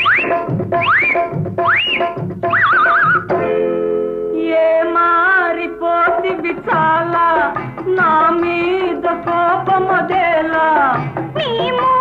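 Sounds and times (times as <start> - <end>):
high voice-like call swooping: 0.0 - 3.3
film song with drum beat: 0.0 - 3.4, 6.0 - 12.0.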